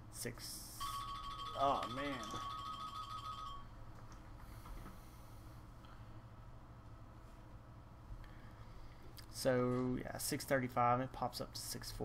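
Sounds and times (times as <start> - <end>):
high electronic tone: 0.8 - 3.7.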